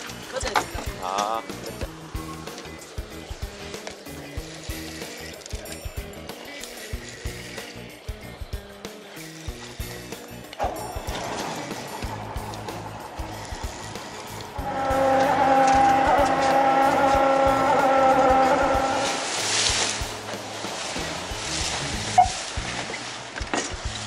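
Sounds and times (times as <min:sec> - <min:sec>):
background music: 0:00.0 - 0:24.0
water rushing: 0:10.6 - 0:24.0.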